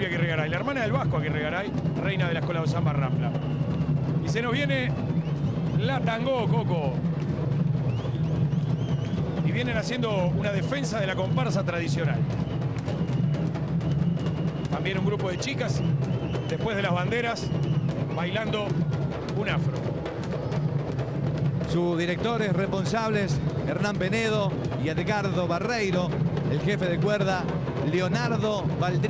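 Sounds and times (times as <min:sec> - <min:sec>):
drum line playing dense rhythm: 0:00.0 - 0:29.0.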